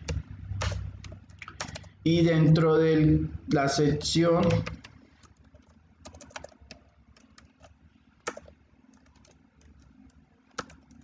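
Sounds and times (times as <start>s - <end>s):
computer keyboard typing: 0.0s - 2.0s, 3.5s - 11.0s.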